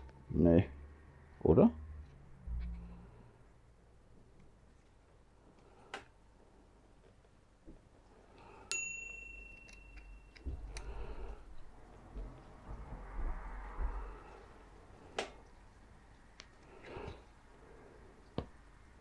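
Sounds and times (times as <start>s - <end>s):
metallic ping ringing: 8.7s - 10.4s.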